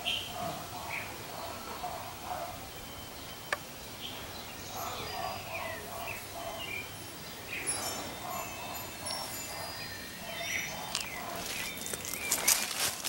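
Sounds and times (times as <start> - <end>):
birds calling: 0.0 - 13.0.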